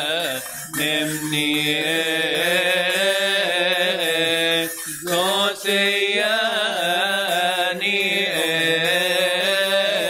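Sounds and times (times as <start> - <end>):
male voices chanting a hymn: 0.0 - 10.0.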